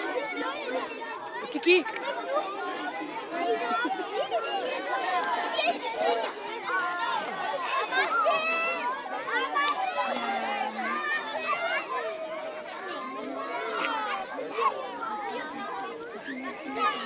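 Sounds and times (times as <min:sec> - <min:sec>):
young children chattering: 0:00.0 - 0:17.0.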